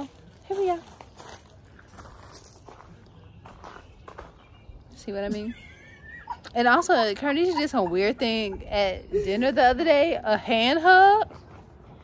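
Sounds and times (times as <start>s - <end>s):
faint shuffling footsteps: 0.0s - 5.5s.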